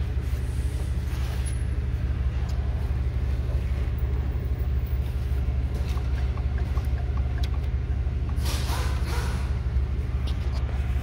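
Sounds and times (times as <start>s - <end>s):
truck engine idling: 0.0s - 11.0s
light regular ticking: 5.8s - 8.4s.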